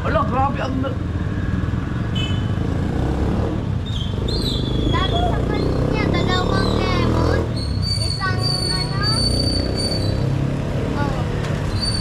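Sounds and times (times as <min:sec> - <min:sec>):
road noise: 0:00.0 - 0:12.0
vehicle engine rumble: 0:00.0 - 0:12.0.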